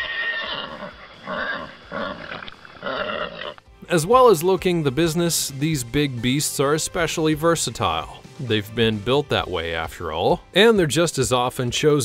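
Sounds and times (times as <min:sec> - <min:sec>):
horse whinnying: 0:00.0 - 0:03.7
background music: 0:00.1 - 0:12.0.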